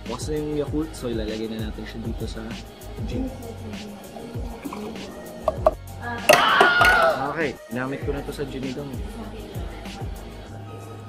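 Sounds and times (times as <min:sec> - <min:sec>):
background music: 0:00.0 - 0:11.0
liquid pouring into a glass: 0:02.2 - 0:07.3.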